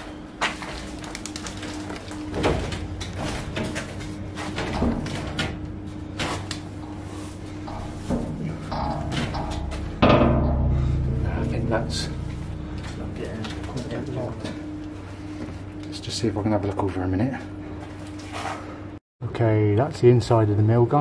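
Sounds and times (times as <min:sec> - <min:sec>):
knocks and scrapes on metal door: 0:06.2 - 0:13.7
loud ringing bang: 0:06.8 - 0:16.4.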